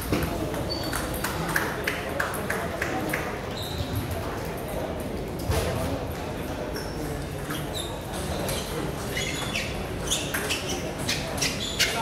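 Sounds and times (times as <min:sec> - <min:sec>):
chatter in a busy hall: 0:00.0 - 0:12.0.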